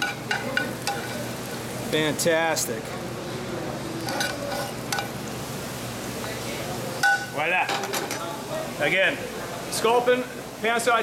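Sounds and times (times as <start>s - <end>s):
sizzling in a pan: 0.0s - 11.0s.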